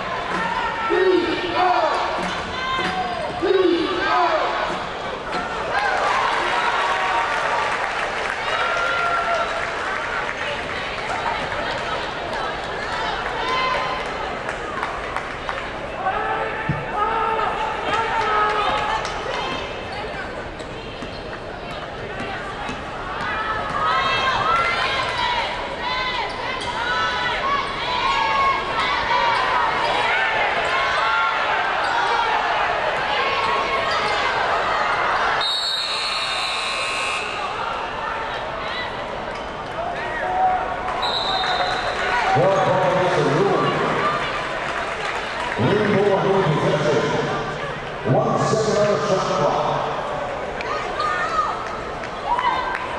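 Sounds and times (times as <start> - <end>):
short high whistle: 35.4 - 37.4
buzzer: 35.5 - 37.4.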